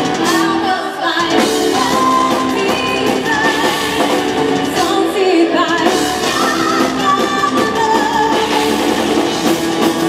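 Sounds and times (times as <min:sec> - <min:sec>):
metal band playing: 0:00.0 - 0:10.0
woman singing: 0:00.2 - 0:09.1.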